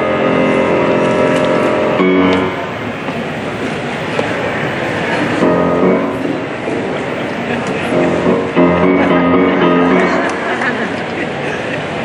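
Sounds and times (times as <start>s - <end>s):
grand piano notes: 0.0s - 11.8s
busy airport concourse ambience: 0.0s - 12.0s.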